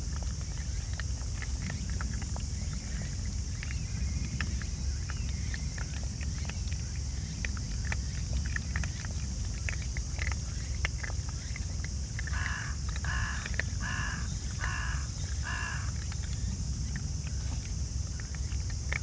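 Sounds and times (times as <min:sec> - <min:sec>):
animals crunching dry food: 0:00.0 - 0:19.0
crow cawing: 0:12.3 - 0:16.0.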